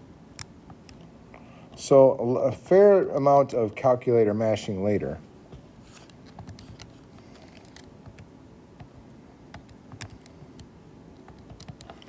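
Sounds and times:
calculator keys clicking: 11.3s - 12.0s.

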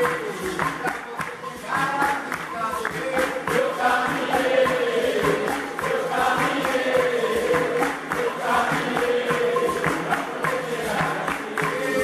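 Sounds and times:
choir singing slow melody: 3.5s - 12.0s.

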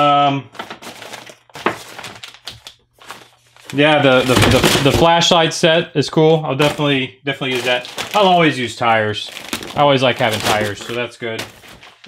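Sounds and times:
plastic packaging crinkling: 0.5s - 5.2s, 6.6s - 12.0s.

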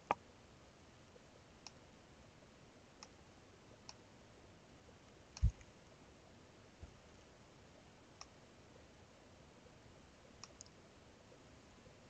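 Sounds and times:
computer mouse clicks: 5.4s - 5.7s, 10.4s - 10.8s.

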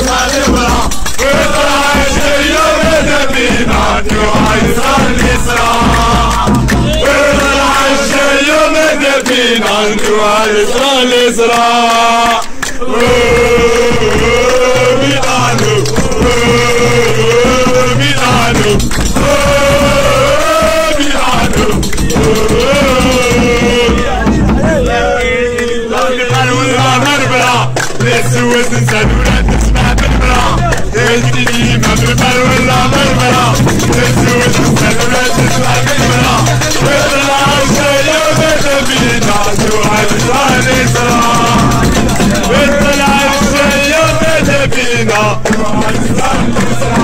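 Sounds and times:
men singing in unison: 0.0s - 47.0s
steady low bass: 12.9s - 44.4s.

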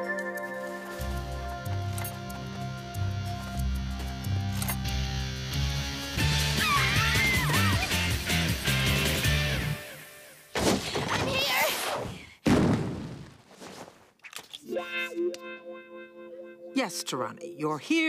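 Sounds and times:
cartoon background music: 6.2s - 9.8s, 14.6s - 18.0s.

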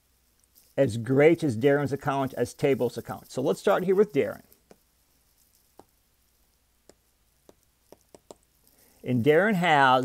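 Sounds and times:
stylus tapping on glass screen: 4.6s - 4.8s, 5.7s - 6.0s, 6.8s - 8.4s.

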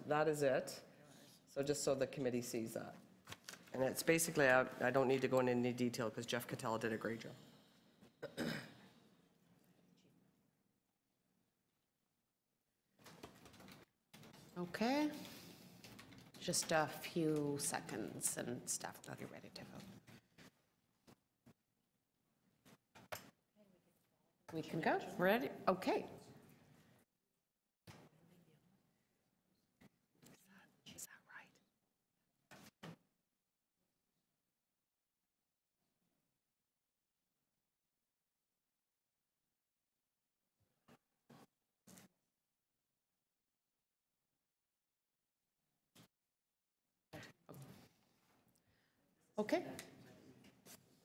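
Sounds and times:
person clearing throat: 8.2s - 9.0s
person whispering: 30.3s - 31.7s.

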